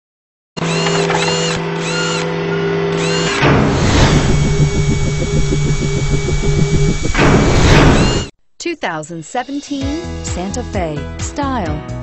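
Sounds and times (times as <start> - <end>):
fast drill-like whirring: 0.6 - 8.3
steady hum: 3.2 - 8.3
whoosh: 3.4 - 8.3.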